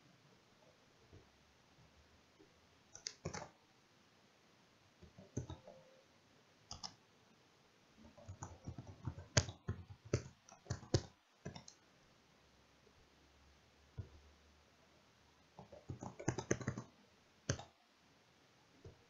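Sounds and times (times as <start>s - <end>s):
computer keyboard typing: 2.9s - 3.6s, 5.0s - 5.8s, 6.7s - 7.0s, 8.1s - 11.8s, 15.6s - 16.9s, 17.5s - 17.8s.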